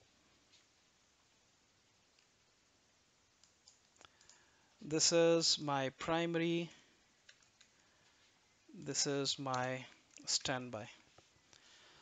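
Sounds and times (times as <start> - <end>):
computer clicks: 3.4 - 4.5, 7.2 - 7.8
man talking: 4.8 - 6.8, 8.7 - 11.0.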